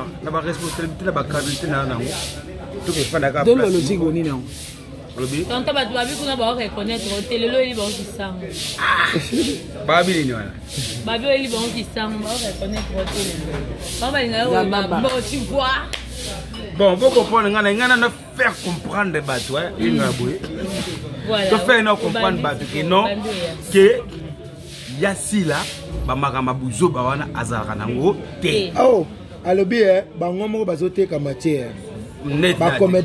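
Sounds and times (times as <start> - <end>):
man speaking: 16.8 - 24.1.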